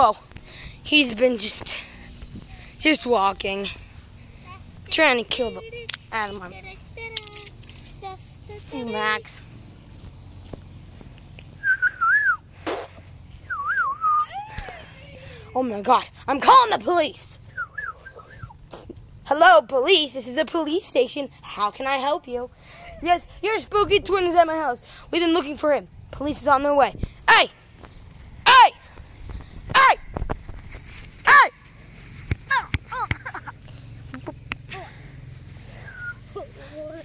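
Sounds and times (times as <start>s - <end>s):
child shouting: 4.4s - 9.3s, 14.2s - 17.2s, 28.5s - 28.8s, 29.7s - 30.1s, 31.2s - 31.6s, 32.5s - 33.1s
person whistling a tune: 11.6s - 12.4s, 13.5s - 14.4s, 17.5s - 18.5s, 35.9s - 36.3s
running footsteps on grass: 27.1s - 37.0s.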